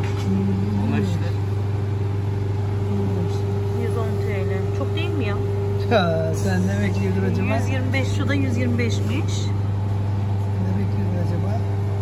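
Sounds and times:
refrigerator electrical hum: 0.0s - 12.0s.

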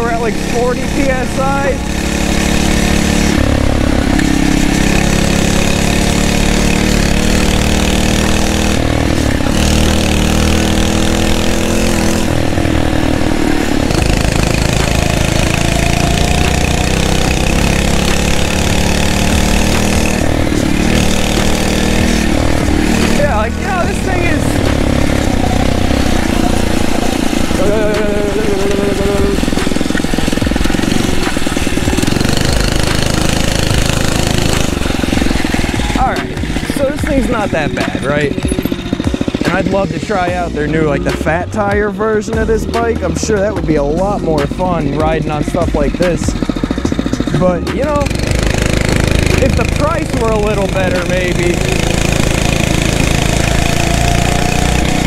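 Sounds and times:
motorized bicycle engine revving: 0.0s - 42.6s, 43.7s - 55.0s.

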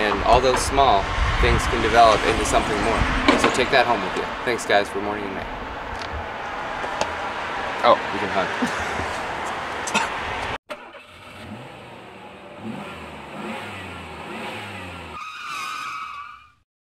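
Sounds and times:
outdoor noise: 0.0s - 16.6s
vehicle engine revving: 7.5s - 15.2s
person laughing: 8.4s - 9.3s.

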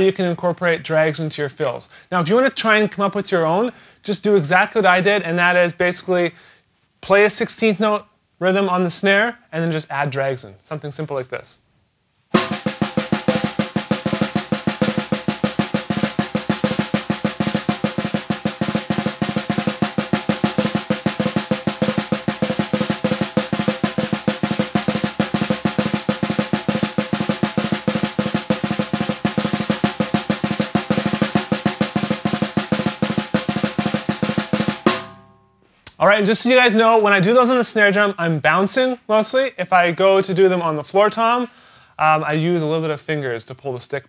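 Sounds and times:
snare drum played with sticks: 12.3s - 36.0s.

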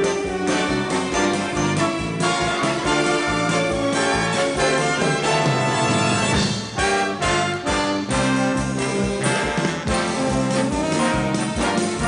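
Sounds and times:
brass orchestral music: 0.0s - 12.0s.

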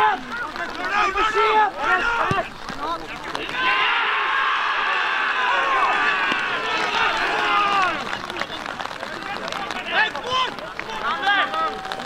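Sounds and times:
men shouting and cheering: 0.0s - 12.0s.

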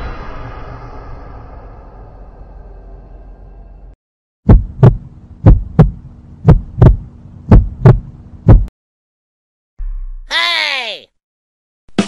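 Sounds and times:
faint steady hum: 4.5s - 8.7s
heartbeat thumps: 4.5s - 8.7s.

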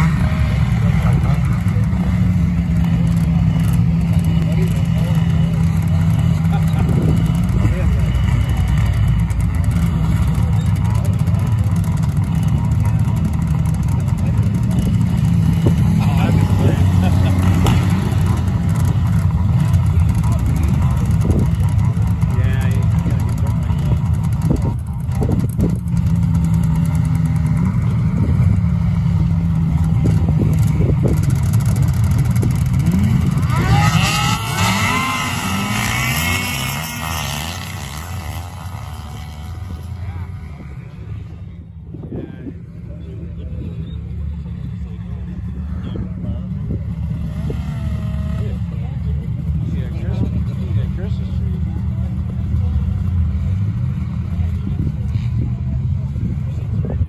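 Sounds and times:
snowmobile engines droning: 0.0s - 57.0s.

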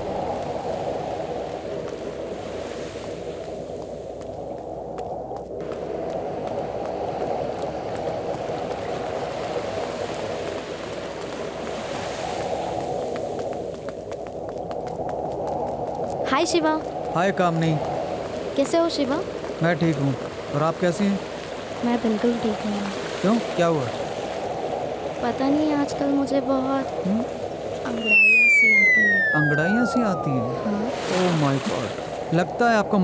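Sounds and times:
sea waves washing on a beach: 0.0s - 33.0s.

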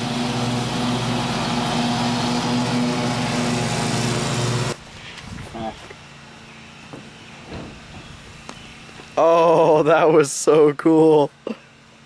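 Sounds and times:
riding lawn mower engine: 0.0s - 12.0s.

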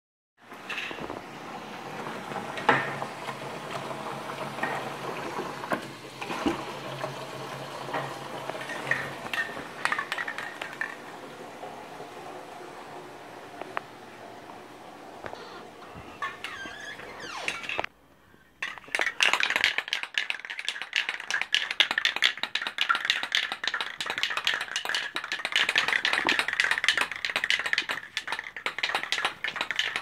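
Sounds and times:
tap water running into bucket: 1.6s - 15.4s, 19.4s - 30.0s.

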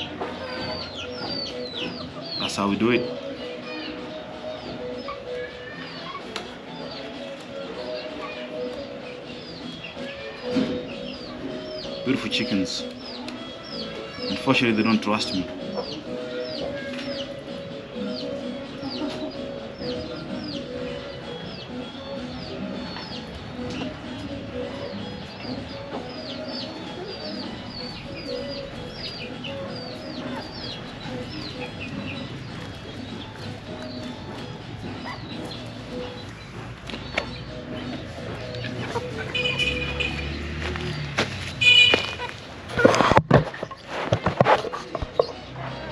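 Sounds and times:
chickens clucking: 0.0s - 45.9s
knocks and rustles: 40.7s - 45.4s.

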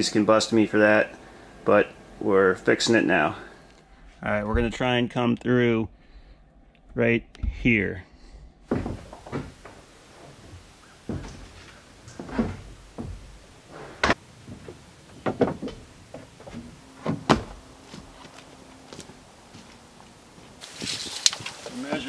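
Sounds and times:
irregular knocks and bangs: 8.7s - 18.2s.

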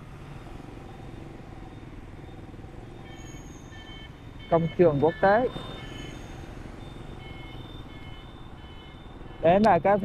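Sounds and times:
city traffic: 0.0s - 10.0s
motorbike engine hum: 0.0s - 10.0s
road noise: 0.0s - 10.0s.

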